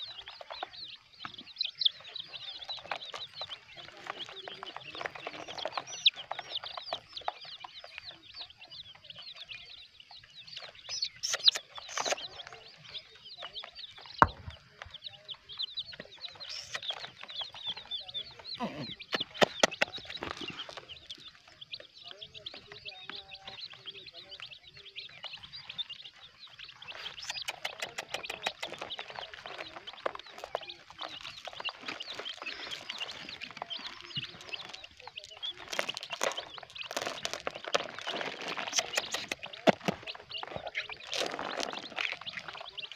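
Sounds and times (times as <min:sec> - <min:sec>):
chicks peeping: 0:00.0 - 0:42.9.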